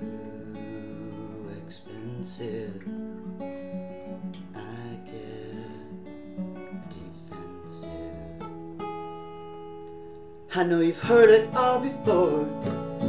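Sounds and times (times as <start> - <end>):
acoustic guitar strumming chords: 0.0 - 13.0.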